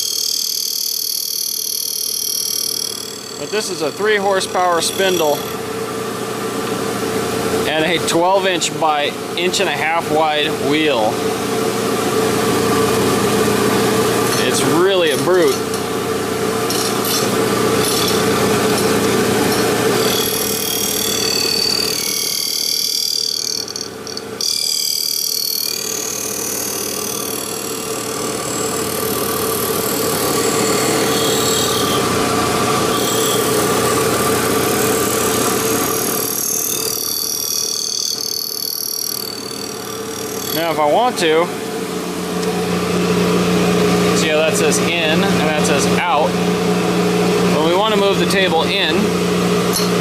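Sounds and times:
grinding wheel cutting steel: 0.0 - 5.7, 12.7 - 15.8, 16.5 - 41.4
surface grinder humming: 0.0 - 6.0, 12.1 - 50.0.

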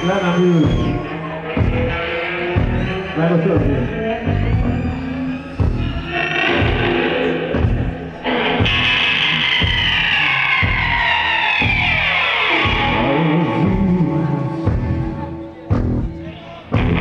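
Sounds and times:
psychedelic rock band playing: 0.0 - 17.0.

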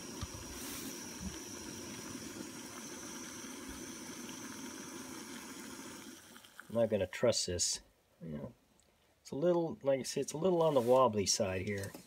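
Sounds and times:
gas stove burner hiss: 0.0 - 7.2
water boiling and bubbling: 0.0 - 7.2.

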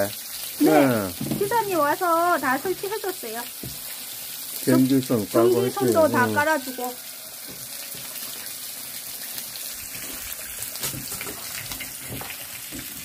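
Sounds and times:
food sizzling in a frying pan: 0.0 - 13.0.

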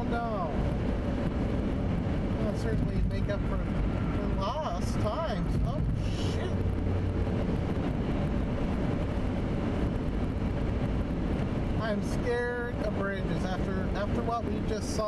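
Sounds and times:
car road noise on wet road: 0.0 - 15.0.

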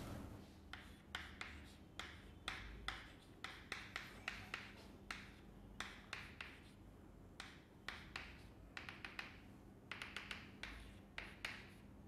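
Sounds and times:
chalk strokes and taps on blackboard: 0.4 - 12.0.

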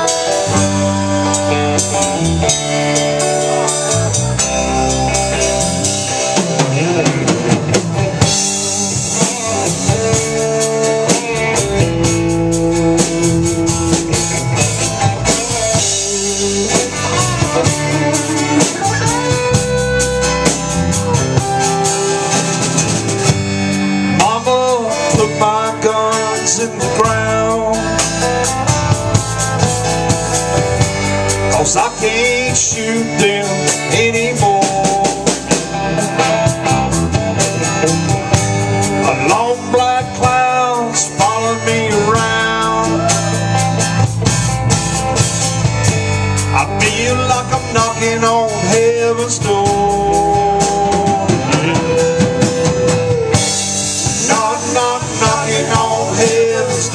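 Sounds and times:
drum kit: 0.0 - 56.9
electric guitars: 0.0 - 56.9
person singing: 6.2 - 22.3, 24.0 - 29.4, 31.3 - 36.3, 38.9 - 43.9, 46.5 - 56.9.

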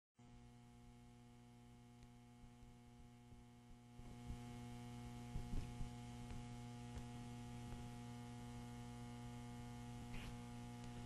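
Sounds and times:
faint electrical mains hum: 0.2 - 11.0.

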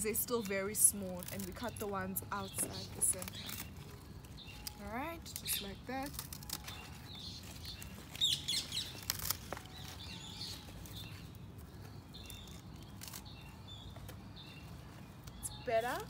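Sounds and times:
pruning shears snipping stalks: 0.0 - 11.3, 12.2 - 14.3
birds chirping: 0.0 - 16.0
leaves rustling: 0.0 - 16.0.

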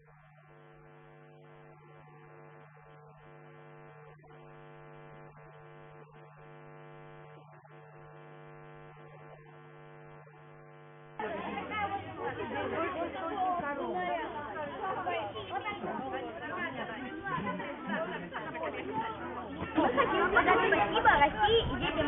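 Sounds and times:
electrical hum: 0.0 - 22.0.

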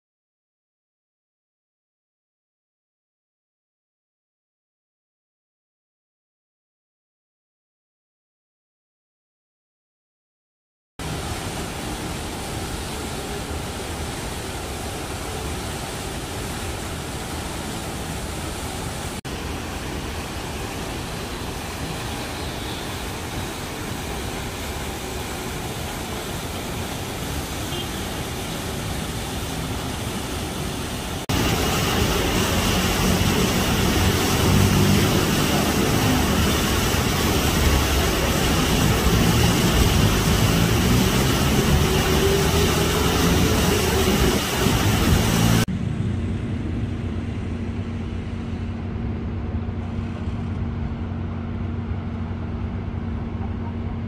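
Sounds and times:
fountain water splashing: 11.0 - 45.7
road traffic hum: 11.0 - 54.0
heavy low rumble: 31.3 - 54.0.

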